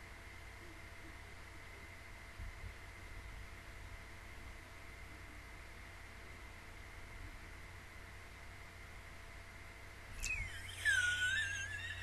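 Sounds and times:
woman squealing: 10.2 - 12.0.

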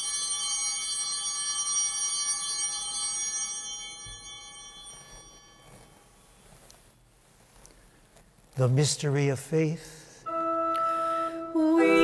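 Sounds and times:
altar bell ringing: 0.0 - 6.4.

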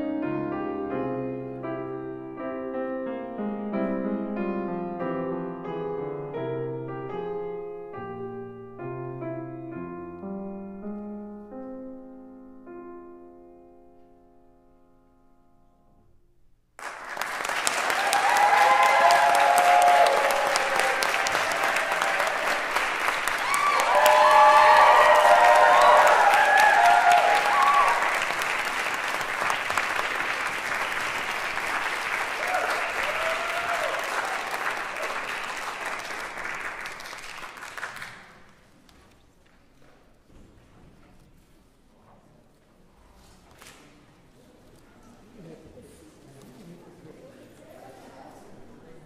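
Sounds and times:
audience applauding: 16.8 - 38.6
voices cheering: 17.8 - 28.5, 32.3 - 35.3.

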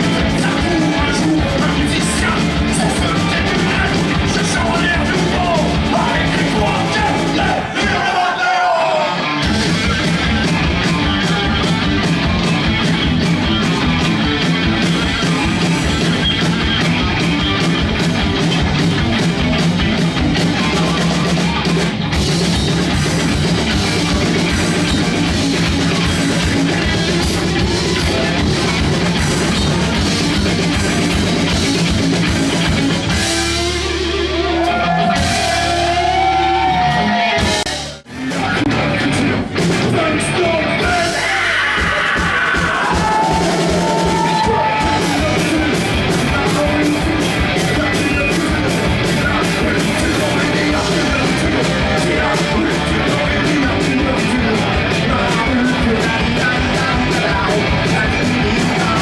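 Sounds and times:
electric guitar: 0.0 - 7.8, 8.9 - 59.0
fast drumming on drum kit: 0.0 - 8.1, 9.4 - 59.0.

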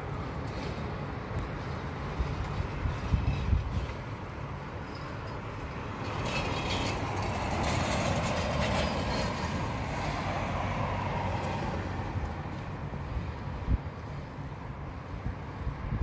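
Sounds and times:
passing vehicle: 0.0 - 16.0.

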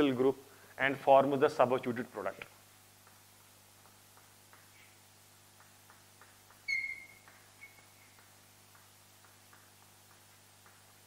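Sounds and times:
chalk squeak: 6.7 - 8.1.

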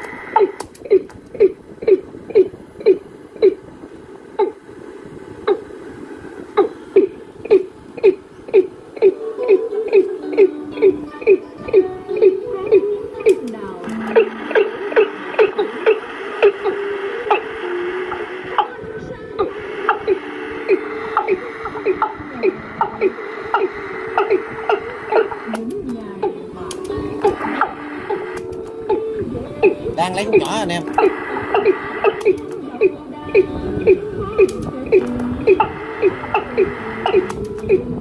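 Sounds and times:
song played from cassette tape: 0.0 - 1.3, 8.6 - 38.0.

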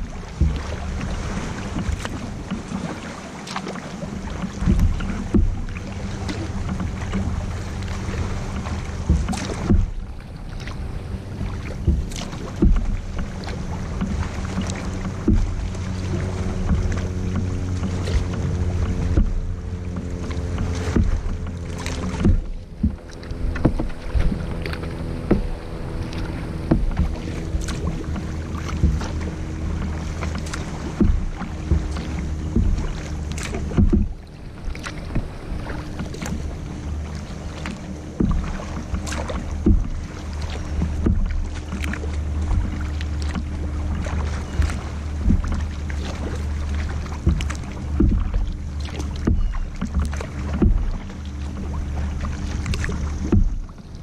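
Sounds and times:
paddle splashing into water: 0.0 - 54.0
steady low hum: 0.0 - 54.0
water slapping against hull: 0.0 - 54.0.

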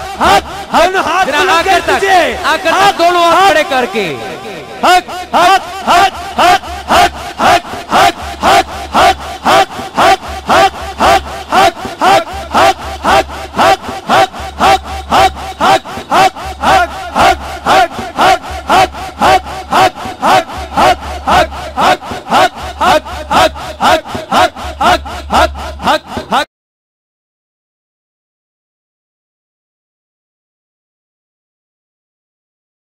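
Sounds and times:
men chanting rhythmically: 0.0 - 26.5.

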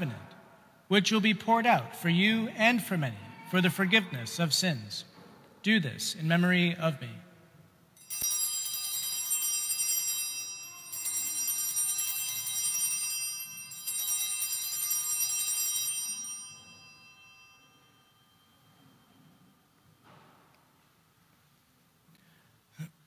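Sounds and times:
altar bells ringing: 8.0 - 20.0.

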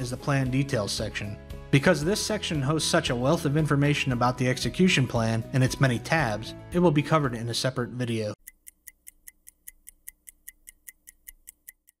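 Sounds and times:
fast clock ticking: 8.4 - 12.0.

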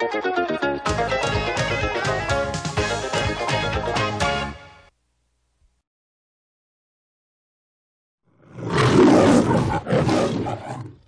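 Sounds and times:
loud animal-like roar: 8.4 - 11.0.

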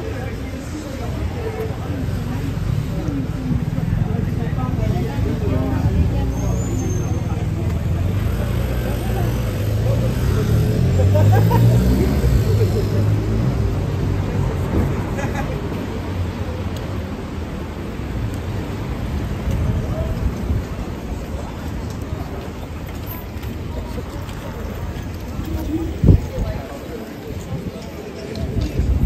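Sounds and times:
car and truck engines: 0.0 - 27.6
people's voices: 0.0 - 29.0
vehicle speeding up close by: 8.2 - 15.1.

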